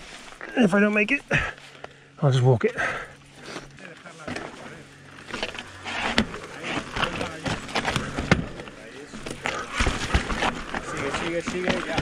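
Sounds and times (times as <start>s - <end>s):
bike tyres crunching over rocks: 2.8s - 12.0s
wheels and frame knocking on rock: 9.2s - 12.0s.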